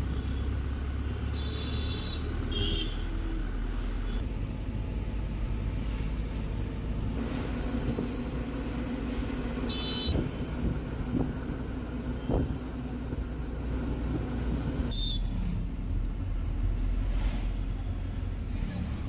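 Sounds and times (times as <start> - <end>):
road rumble: 0.0 - 19.0
vehicle engine hum: 0.0 - 19.0.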